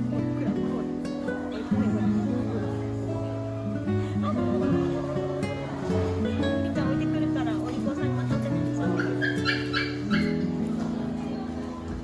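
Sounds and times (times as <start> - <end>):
puppy yipping: 9.0 - 10.5.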